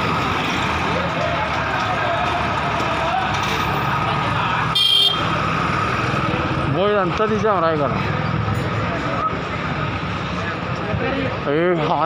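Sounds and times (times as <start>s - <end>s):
street and engine noise: 0.0s - 12.0s
vehicle horn toot: 4.7s - 5.3s.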